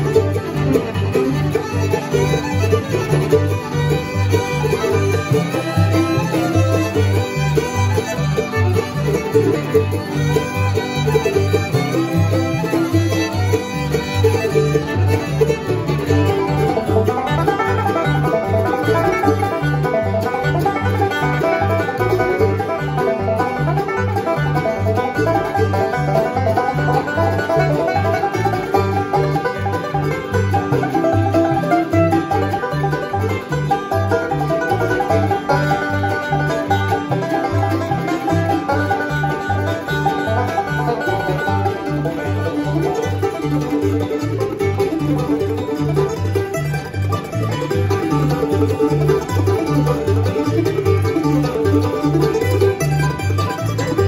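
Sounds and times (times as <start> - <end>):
banjo picked in rapid rolls: 0.0 - 54.0
steady bass line: 0.0 - 54.0.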